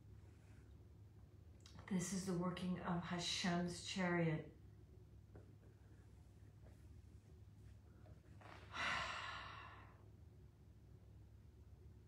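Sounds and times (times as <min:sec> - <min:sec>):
low steady hum: 0:00.0 - 0:12.0
woman's breathy sigh: 0:08.6 - 0:10.0.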